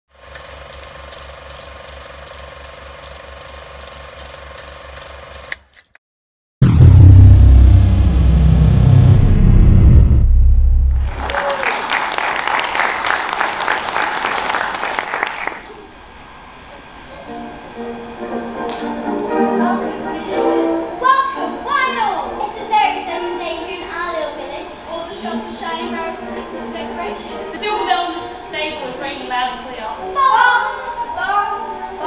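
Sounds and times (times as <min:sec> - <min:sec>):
deep rumble with falling tone: 0:06.6 - 0:11.4.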